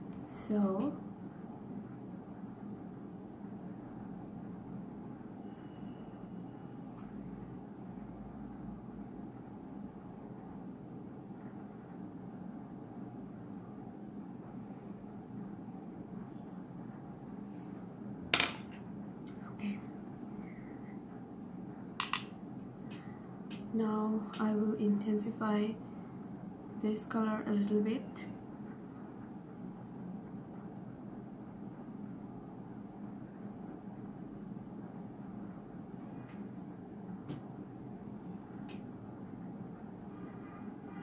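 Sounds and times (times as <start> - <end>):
low background hum: 0.0 - 41.0
makeup tools clicking: 22.0 - 22.3.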